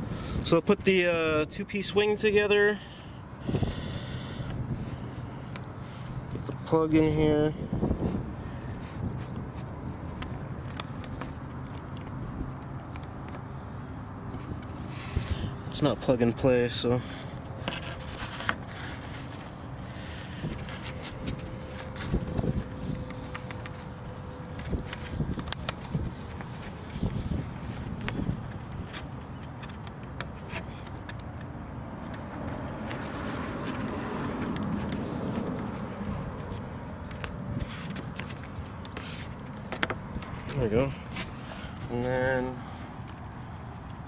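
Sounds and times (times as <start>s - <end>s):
outdoor background: 0.0s - 44.0s
hands rubbing and pressing tape: 17.6s - 31.5s, 32.1s - 41.4s.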